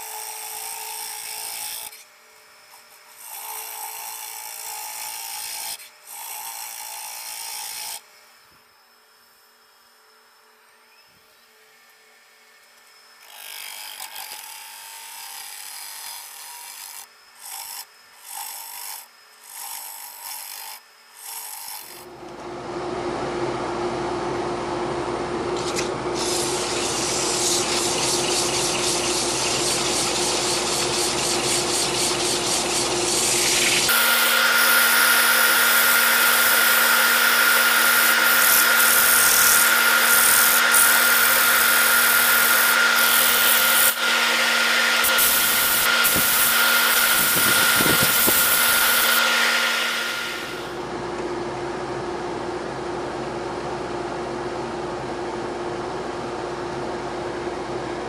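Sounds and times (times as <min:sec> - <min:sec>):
gouge cutting wood hiss: 0:25.6 - 0:50.8
wood lathe hum: 0:26.1 - 0:50.9
sanding rubbing hiss: 0:26.2 - 0:36.9, 0:45.0 - 0:49.2.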